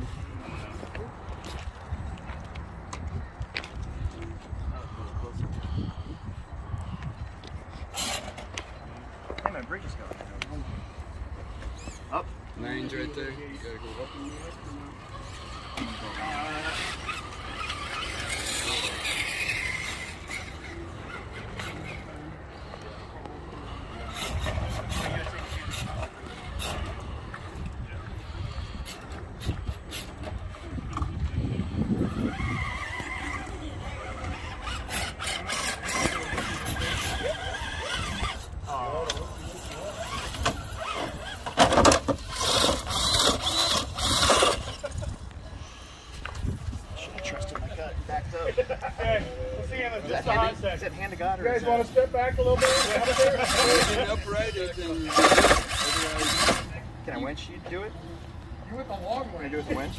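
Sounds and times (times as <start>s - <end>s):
tires scraping on stone: 7.6s - 59.9s
electric motor whining: 13.5s - 46.6s, 51.8s - 57.8s
toy crawler tipping over clatter: 31.9s - 45.0s, 52.4s - 56.7s.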